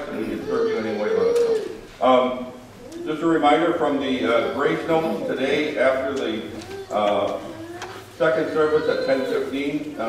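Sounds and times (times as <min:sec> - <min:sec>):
man speaking: 0:00.0 - 0:01.4, 0:02.0 - 0:10.0.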